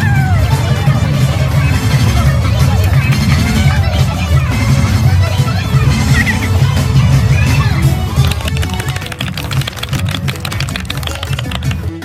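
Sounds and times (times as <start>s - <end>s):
music with percussive beat and bass: 8.2s - 11.8s.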